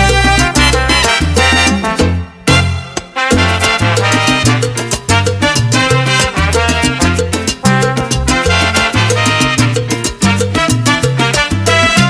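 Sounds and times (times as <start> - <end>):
salsa band playing: 0.0 - 12.0.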